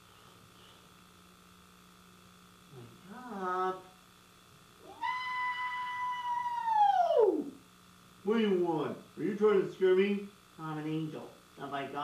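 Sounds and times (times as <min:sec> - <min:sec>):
high eerie wail: 0:04.8 - 0:07.6.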